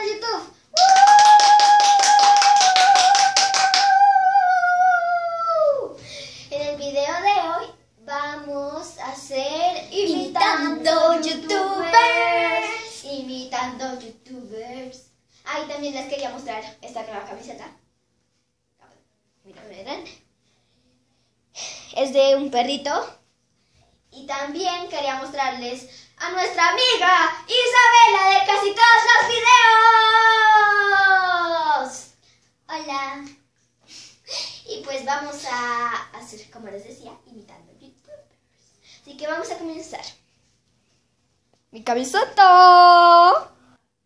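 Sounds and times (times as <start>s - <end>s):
girl speaking: 0.0s - 0.6s, 5.6s - 17.8s, 18.8s - 20.2s, 21.9s - 23.2s, 24.2s - 29.9s, 34.7s - 38.4s, 39.0s - 40.2s, 41.7s - 43.6s
quick hand claps: 0.8s - 4.0s
girl singing a long high note: 10.1s - 13.0s.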